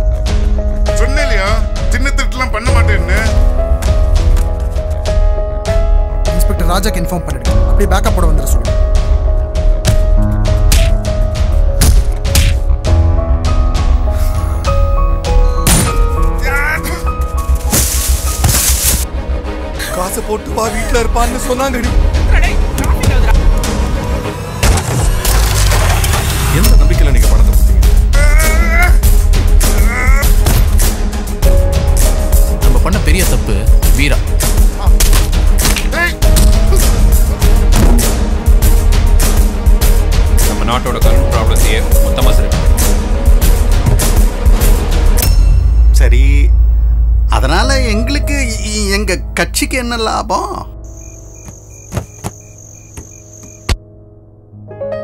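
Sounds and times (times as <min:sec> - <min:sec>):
crickets chirping: 0:50.4 - 0:53.8.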